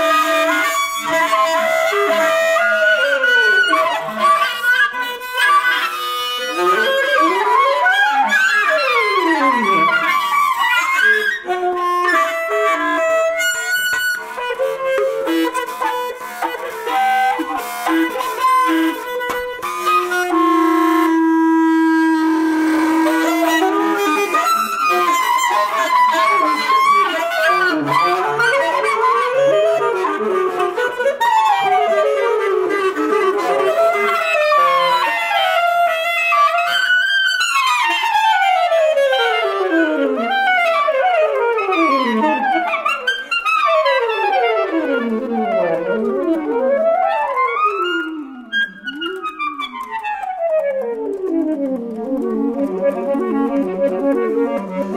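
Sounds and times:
clarinet: 0.0s - 54.9s
saxophone: 0.0s - 54.9s.

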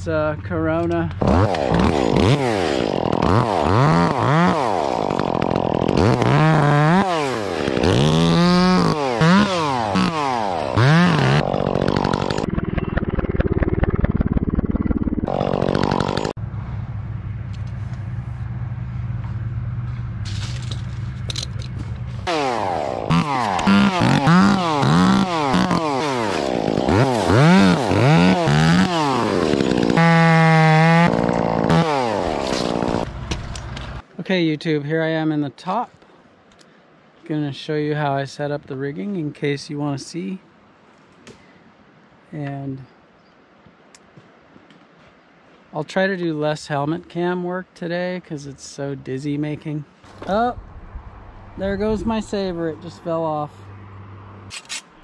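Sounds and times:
chainsaw revving and idling: 1.2s - 16.4s, 22.2s - 34.0s.

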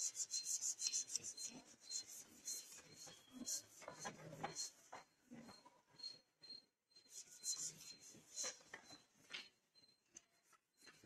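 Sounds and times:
cloth duster wiping chalkboard: 0.0s - 4.9s, 7.1s - 8.7s.

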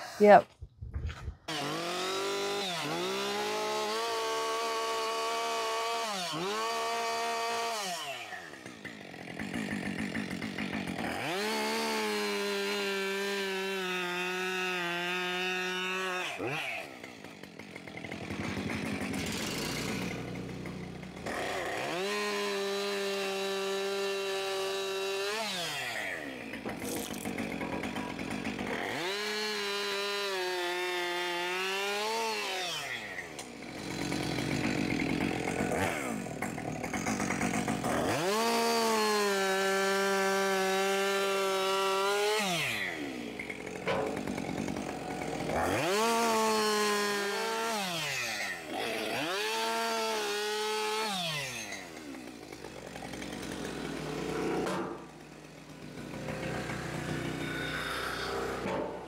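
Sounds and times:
chainsaw cutting logs: 0.0s - 59.0s.

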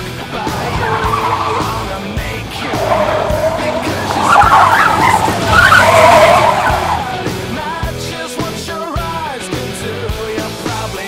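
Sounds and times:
music: 0.0s - 11.0s
car tyres squealing: 0.1s - 8.0s.

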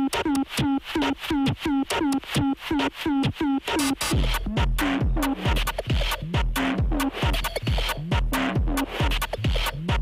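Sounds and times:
techno with falling synth hits: 0.0s - 10.0s.

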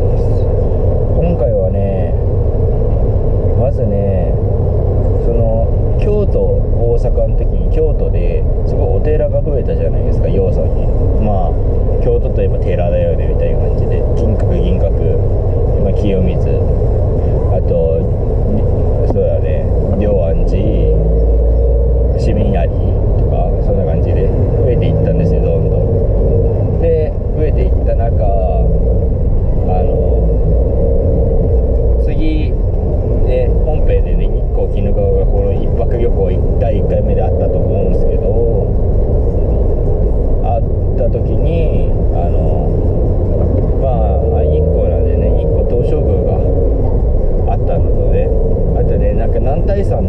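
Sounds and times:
car engine rumble: 0.0s - 50.0s
road noise inside car: 0.0s - 50.0s.

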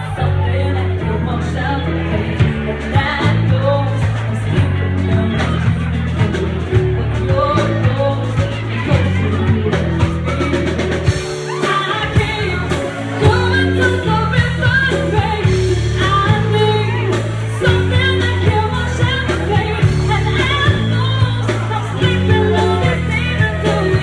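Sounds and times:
live band playing pop song: 0.0s - 24.0s
woman singing lead: 0.0s - 24.0s
steady drum beat: 2.3s - 24.0s.

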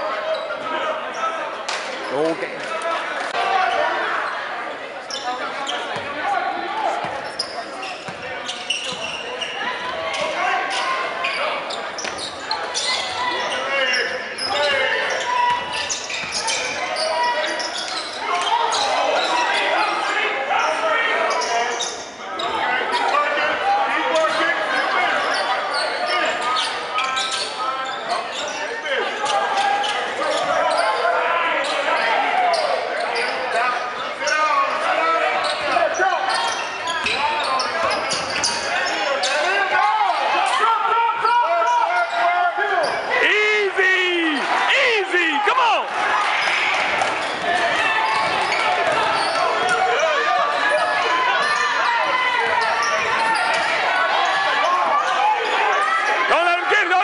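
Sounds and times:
echoing voices: 39.5s - 57.0s.

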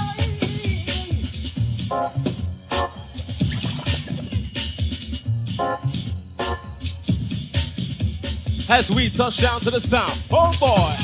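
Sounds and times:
dance music with deep bassline: 0.0s - 11.0s.

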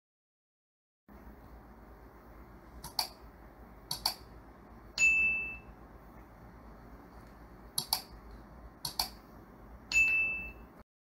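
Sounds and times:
mouse clicks: 2.8s - 3.2s, 3.9s - 4.3s, 7.2s - 8.2s, 8.8s - 9.2s
bright chime ding: 5.0s - 5.7s, 9.9s - 10.7s.

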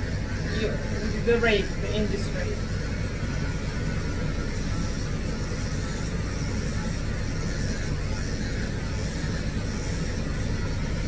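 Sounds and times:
electric motor hum: 0.0s - 11.0s.

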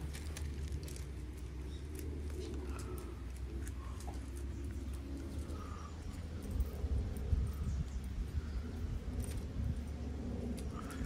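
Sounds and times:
birds calling: 0.0s - 11.0s
steady low rumble: 0.0s - 11.0s.

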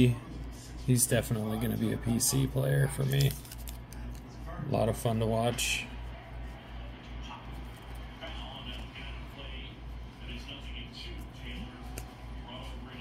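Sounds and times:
trading cards sliding and flipping: 3.0s - 4.4s, 11.1s - 12.9s.

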